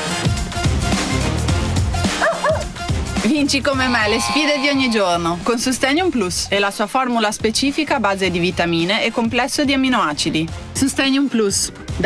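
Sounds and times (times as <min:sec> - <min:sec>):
upbeat background music: 0:00.0 - 0:12.0
small dog barking: 0:02.2 - 0:02.7.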